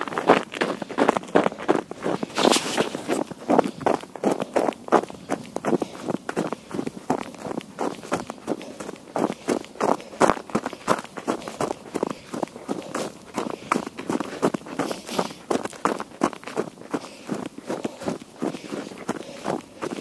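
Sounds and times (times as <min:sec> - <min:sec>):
footsteps running on snow: 0:00.0 - 0:20.0.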